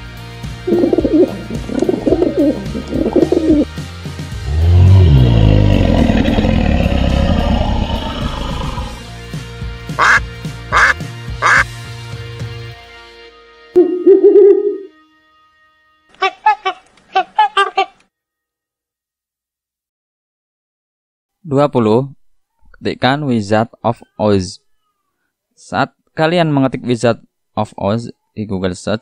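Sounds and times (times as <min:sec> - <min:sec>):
background music: 0:00.0 - 0:16.8
dove cooing: 0:00.7 - 0:03.7
owl hoot: 0:00.7 - 0:03.7
low dinosaur roar: 0:04.4 - 0:09.0
duck quacks: 0:10.0 - 0:11.7.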